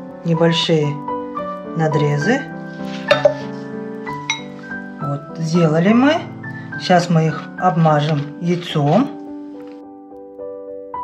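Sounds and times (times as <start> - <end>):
soft keyboard music: 0.0 - 11.0.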